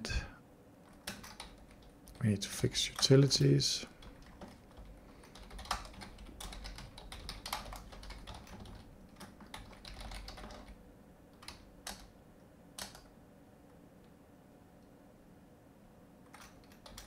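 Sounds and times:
computer keyboard typing: 0:00.8 - 0:02.2, 0:02.9 - 0:12.2, 0:12.8 - 0:13.1, 0:16.2 - 0:17.0.

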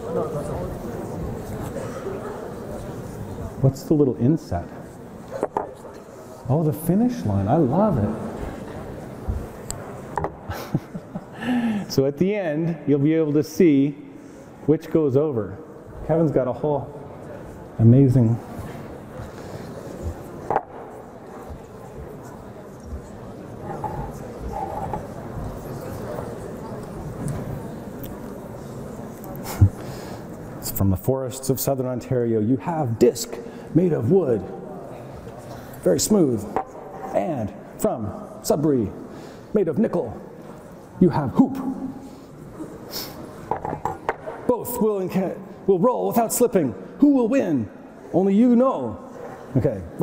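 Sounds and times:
room noise: 0:00.0 - 0:50.0.

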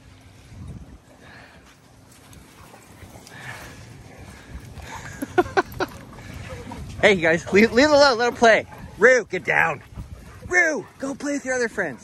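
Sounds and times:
footfalls and scuffling in wet sand: 0:00.0 - 0:12.0.

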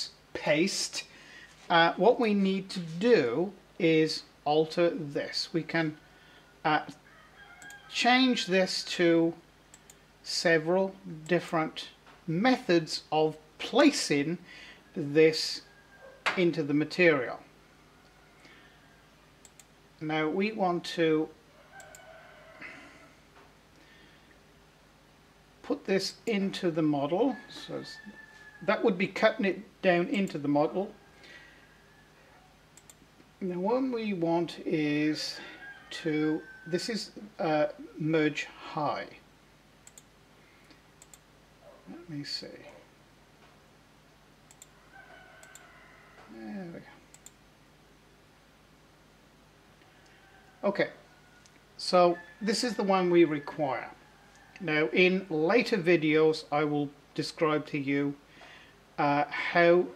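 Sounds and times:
faint room hum: 0:00.0 - 0:59.9
computer mouse clicks: 0:07.6 - 0:07.8, 0:19.4 - 0:19.7, 0:21.8 - 0:22.0, 0:32.8 - 0:33.0, 0:39.8 - 0:40.1, 0:41.0 - 0:41.2, 0:44.5 - 0:44.7, 0:45.4 - 0:45.6, 0:47.1 - 0:47.4.

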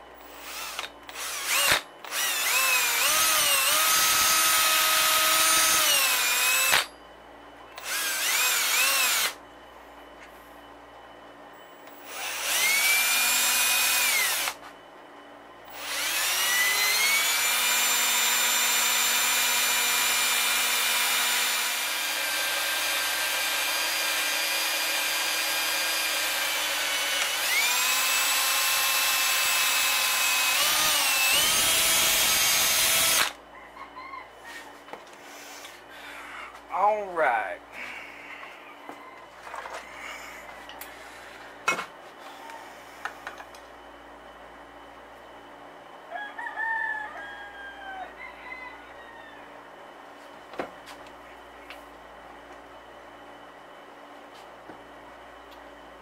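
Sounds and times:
cordless drill motor whine: 0:00.2 - 0:07.0, 0:07.8 - 0:09.4, 0:11.6 - 0:14.7, 0:15.6 - 0:33.4.

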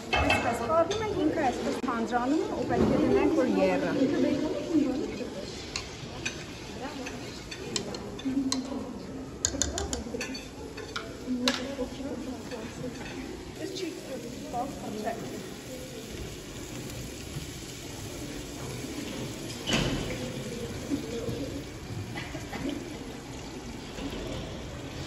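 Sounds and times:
indistinct talk: 0:00.0 - 0:25.0.

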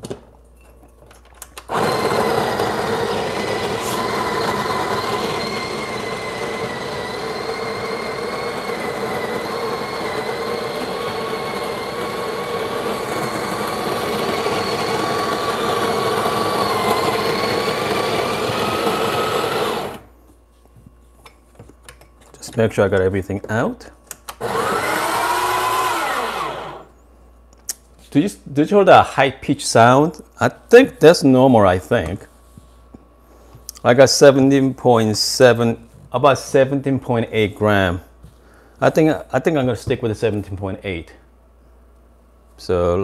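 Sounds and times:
coffee grinder grinding: 0:01.6 - 0:20.1, 0:24.4 - 0:26.9.

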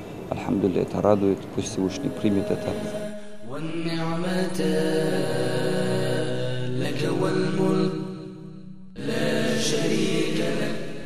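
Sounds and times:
man chanting in long held notes: 0:00.4 - 0:08.2.

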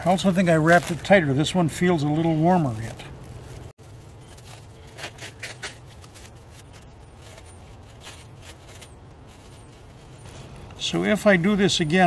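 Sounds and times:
plastic wrap rustling: 0:00.0 - 0:10.9
low steady background noise: 0:00.0 - 0:12.0.

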